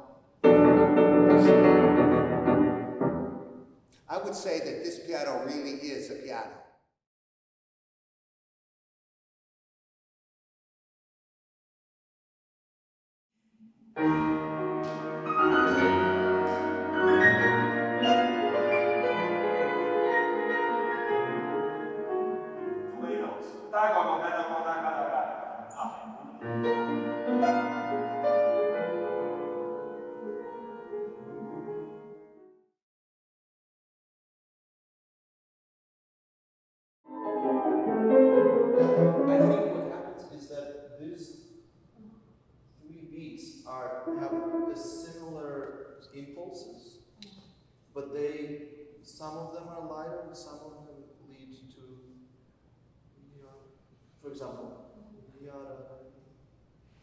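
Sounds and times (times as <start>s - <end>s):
grand piano classical passage: 0.0s - 5.5s, 13.6s - 32.6s, 37.1s - 41.5s, 43.5s - 45.6s.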